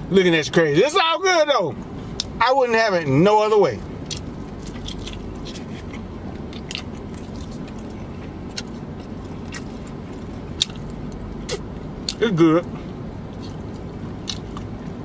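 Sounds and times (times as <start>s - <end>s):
steady low hum: 0.0s - 15.0s
man chewing with mouth smacks: 4.0s - 15.0s.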